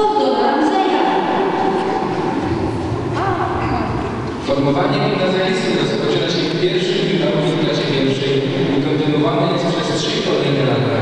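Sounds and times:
indistinct echoing voices: 0:00.0 - 0:11.0
low rumble: 0:01.0 - 0:11.0.

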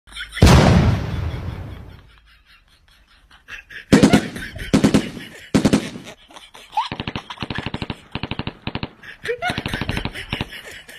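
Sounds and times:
machine-gun burst: 0:00.4 - 0:01.6, 0:03.9 - 0:06.1
loud gunshots with ringing tail: 0:00.4 - 0:02.0, 0:03.9 - 0:06.0.

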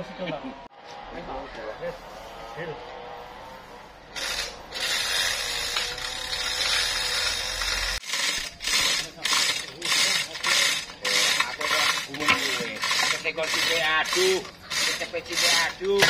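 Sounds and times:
hoist chain rattling: 0:04.2 - 0:16.0
ratchet clicking: 0:04.2 - 0:16.0.

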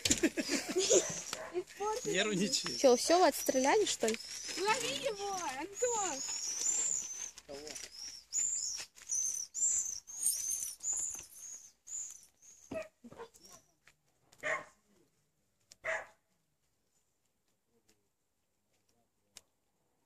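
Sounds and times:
dog barking: 0:00.8 - 0:01.7, 0:12.7 - 0:13.4, 0:14.4 - 0:14.8, 0:15.8 - 0:16.2
short high-pitched chirps: 0:01.9 - 0:12.7.

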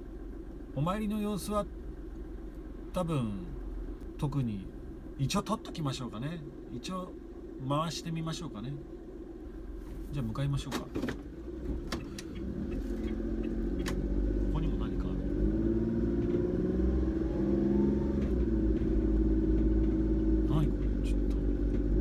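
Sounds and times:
small van engine accelerating: 0:11.1 - 0:22.0.

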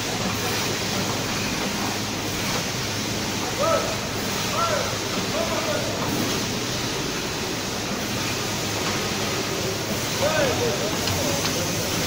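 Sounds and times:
bottle filling line running: 0:00.0 - 0:12.0.

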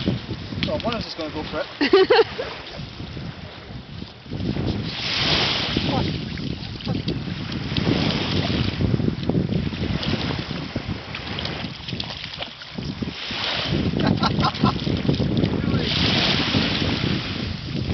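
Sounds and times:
small waves washing onto shore: 0:00.0 - 0:17.9
wind buffeting microphone: 0:00.0 - 0:17.9.

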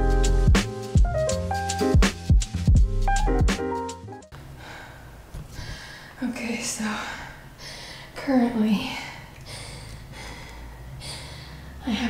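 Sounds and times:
woman breathing hard: 0:04.5 - 0:06.2, 0:06.9 - 0:08.2, 0:08.8 - 0:11.8.

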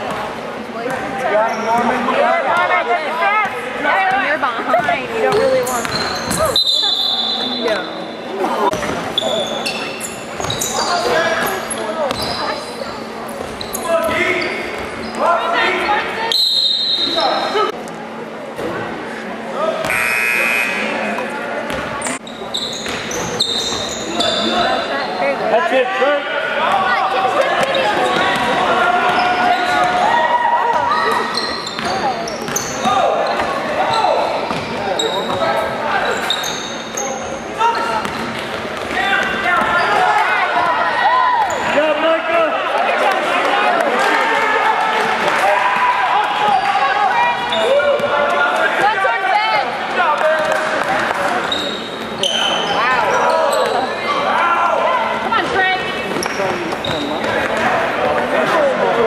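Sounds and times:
people calling out and talking: 0:00.0 - 0:59.0
sneaker squeaks: 0:00.9 - 0:02.8, 0:04.1 - 0:17.7, 0:19.8 - 0:25.4, 0:26.7 - 0:30.0, 0:30.6 - 0:40.4, 0:41.4 - 0:41.8, 0:51.2 - 0:54.3, 0:55.4 - 0:57.8.

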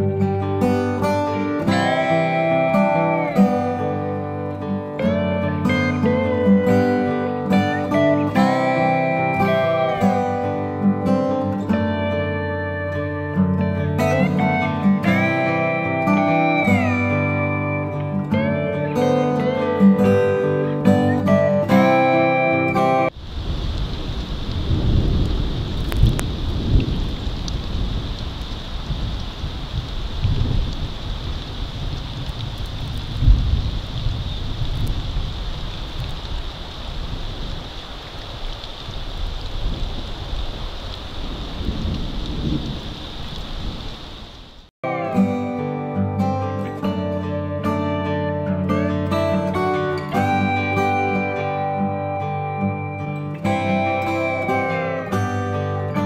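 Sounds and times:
plucked acoustic guitar music: 0:00.0 - 0:23.2, 0:44.8 - 0:56.0
rain-like hiss: 0:00.0 - 0:44.7
thin high tone: 0:01.3 - 0:04.3, 0:05.0 - 0:11.4, 0:14.0 - 0:23.2, 0:49.8 - 0:56.0.

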